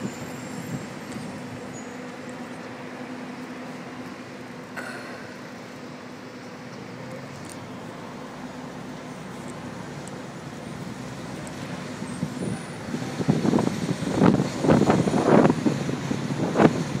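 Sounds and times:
bus engine hum: 0.0 - 17.0.

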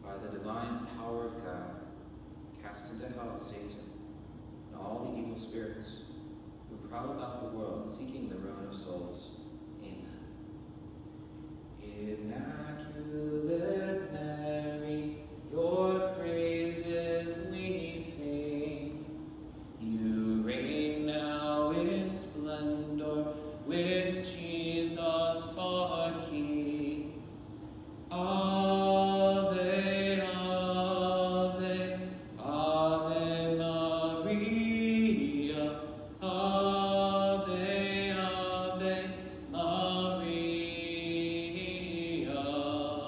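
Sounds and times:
person singing a slow hymn: 11.8 - 27.4, 28.1 - 43.0.

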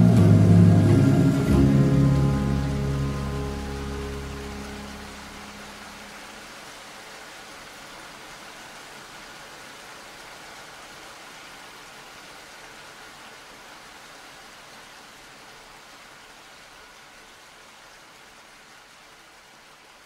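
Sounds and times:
steady rain hiss: 0.0 - 20.0.

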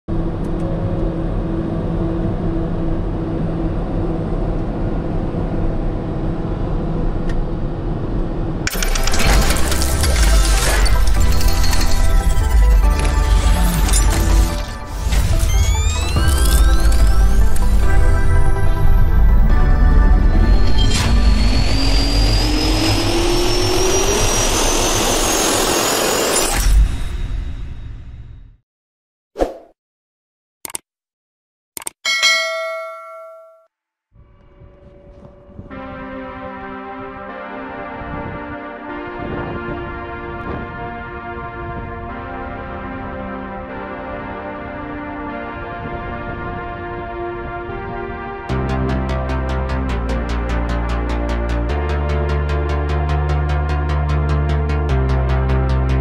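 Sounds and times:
turboprop engines droning: 0.1 - 8.7, 17.9 - 26.0
jet engine turbine whine: 19.9 - 26.3
loud music: 39.8 - 56.0.

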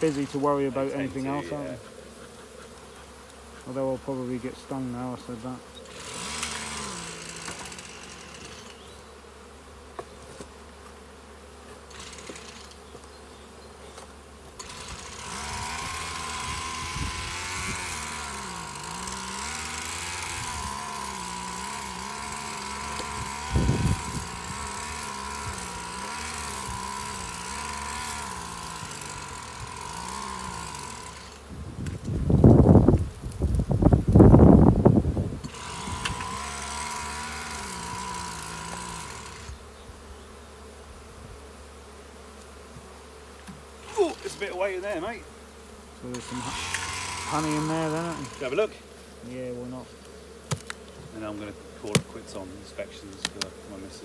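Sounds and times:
bees buzzing: 0.0 - 54.0.

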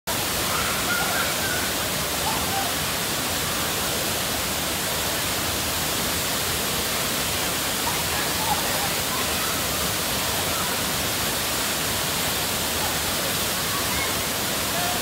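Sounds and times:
waterfall rushing: 0.1 - 15.0.

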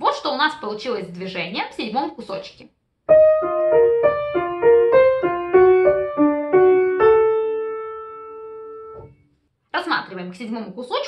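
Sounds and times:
piano melody: 3.1 - 9.3.

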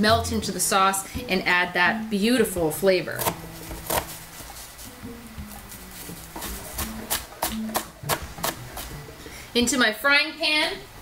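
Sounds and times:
light background music: 0.0 - 11.0
knife chopping on plastic board: 3.2 - 4.2, 6.3 - 9.0.

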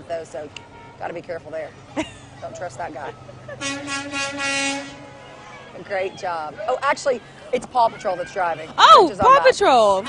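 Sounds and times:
vehicle horn honking: 3.6 - 5.7.

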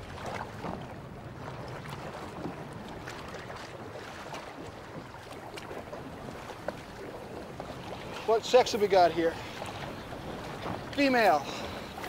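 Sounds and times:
sea water around a boat: 0.0 - 12.0.

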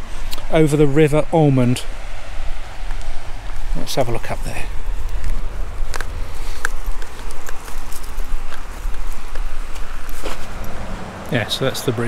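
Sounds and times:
footsteps on gravel and grass: 2.4 - 12.0.

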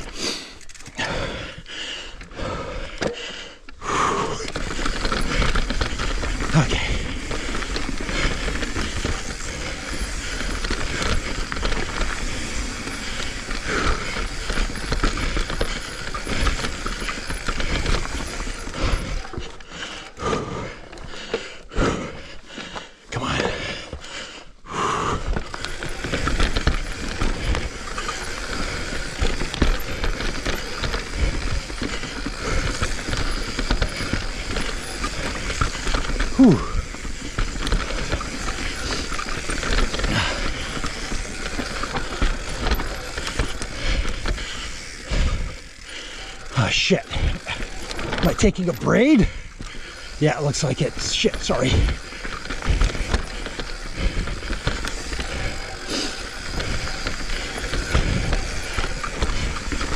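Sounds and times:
mountain bike clattering and rattling: 0.0 - 59.9
tyre noise on dirt: 3.9 - 21.2, 21.8 - 59.9
rear hub ticking: 4.2 - 22.8, 24.8 - 59.9.

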